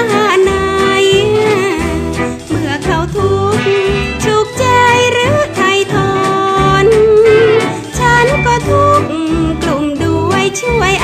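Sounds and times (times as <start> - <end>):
instrumental accompaniment: 0.0 - 11.0
woman singing with vibrato: 0.0 - 11.0.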